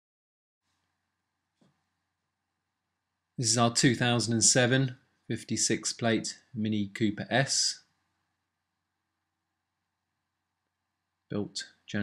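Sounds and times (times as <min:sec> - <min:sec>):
faint background hiss: 0:03.3 - 0:09.5, 0:10.4 - 0:12.0.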